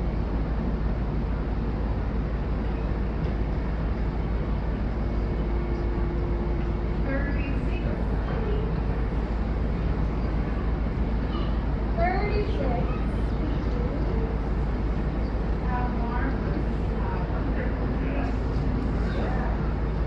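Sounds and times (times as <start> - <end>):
loud low rumble: 0.0 - 20.0
faint voices: 2.5 - 20.0.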